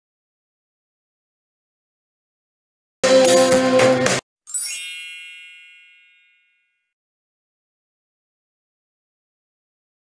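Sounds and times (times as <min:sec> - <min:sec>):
music: 0:03.0 - 0:05.2
bright high chime: 0:04.5 - 0:07.0.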